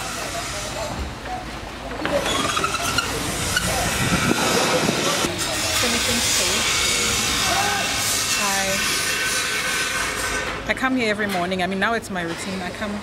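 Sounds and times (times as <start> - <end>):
faint distant voices: 0.0 - 8.8.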